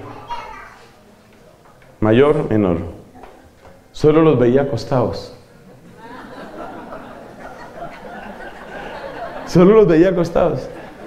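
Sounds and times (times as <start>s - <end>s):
man speaking: 3.9s - 5.5s, 9.4s - 10.9s.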